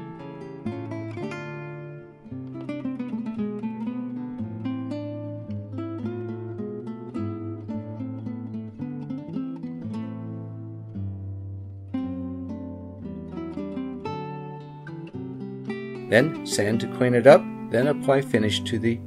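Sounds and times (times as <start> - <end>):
acoustic guitar picking and strumming: 0.0 - 19.0.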